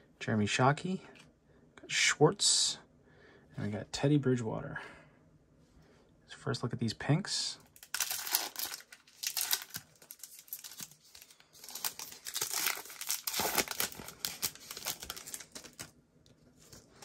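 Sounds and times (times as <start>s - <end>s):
plastic wrapper crinkling and tearing: 7.7s - 16.0s.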